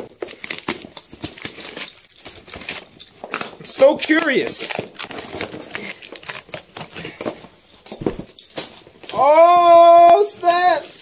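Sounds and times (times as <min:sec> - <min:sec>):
packaging tearing and crinkling: 0:00.0 - 0:11.0.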